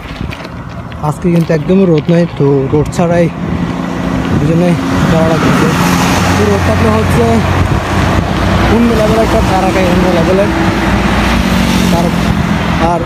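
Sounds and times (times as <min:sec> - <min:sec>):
bus passing by: 0:00.0 - 0:13.0.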